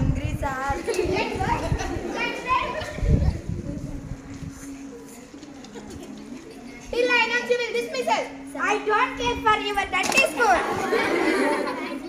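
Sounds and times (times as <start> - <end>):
girls chattering: 0.0 - 12.0.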